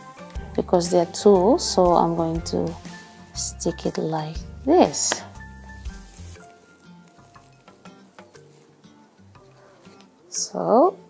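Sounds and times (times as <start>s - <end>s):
faint background music: 0.0s - 11.0s
crackling of handled fabric: 5.1s - 10.3s.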